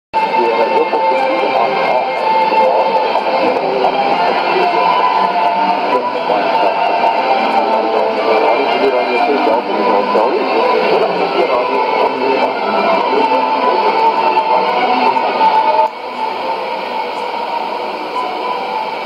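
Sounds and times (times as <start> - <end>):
music on shortwave radio: 0.2 - 19.0
voice on shortwave radio: 0.2 - 19.0.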